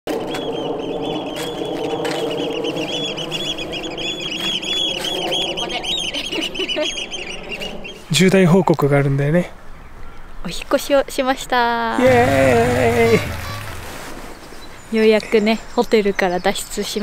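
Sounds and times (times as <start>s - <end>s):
many birds calling: 0.3s - 8.1s, 12.0s - 16.5s
honking bird calls: 12.0s - 14.4s.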